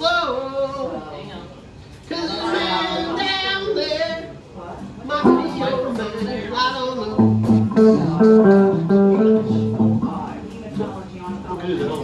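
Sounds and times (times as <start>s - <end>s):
guitars playing picked riff: 5.2s - 11.0s
low bass notes: 7.2s - 10.4s.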